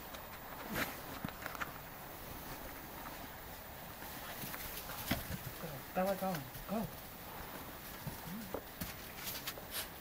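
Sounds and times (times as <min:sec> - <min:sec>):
horse hooves stepping: 0:03.9 - 0:10.0.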